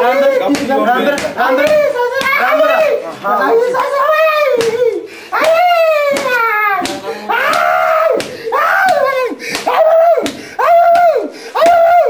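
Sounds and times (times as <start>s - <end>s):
slaps of blows landing: 0.4s - 2.9s, 4.2s - 12.0s
man wailing in pain: 1.8s - 12.0s.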